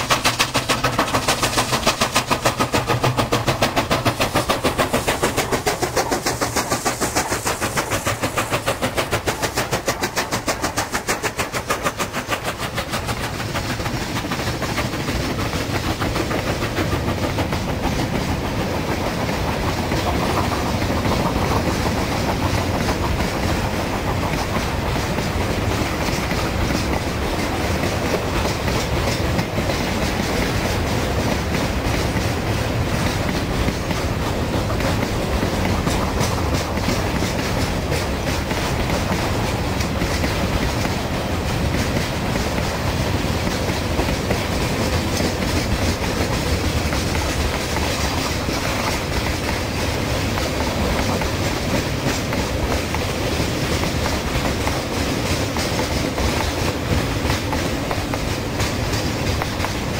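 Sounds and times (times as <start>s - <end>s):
train wheels clickety-clack: 0.0s - 59.9s.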